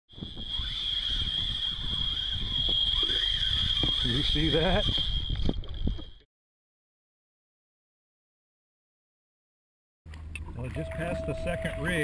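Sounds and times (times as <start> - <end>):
high-pitched whine: 0.1 - 6.2, 10.7 - 12.0.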